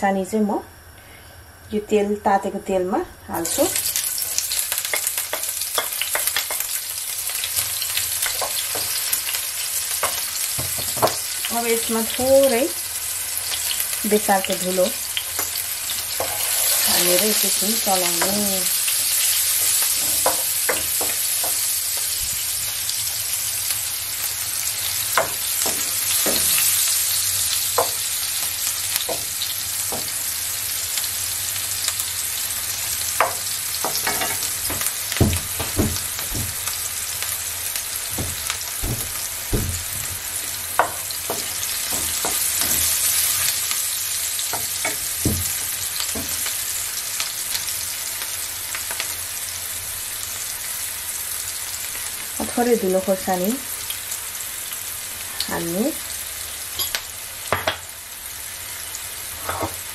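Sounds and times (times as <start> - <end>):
onion sizzling in hot oil: 3.2 - 59.9
wooden spatula knocking on pan: 10.0 - 11.2, 25.2 - 26.6, 33.2 - 36.8, 38.1 - 43.0, 44.5 - 46.4.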